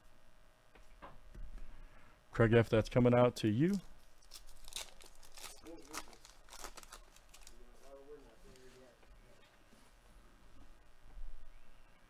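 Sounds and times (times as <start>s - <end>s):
wrapper tearing and crinkling: 4.0s - 8.0s.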